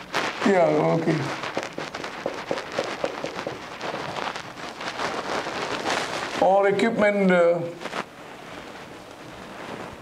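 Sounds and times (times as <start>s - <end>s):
marker writing on whiteboard: 1.4s - 4.2s.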